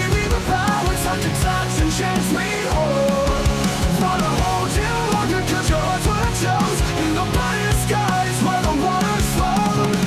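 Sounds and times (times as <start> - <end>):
rock music drums: 0.0 - 10.0
sustained guitar: 0.0 - 10.0.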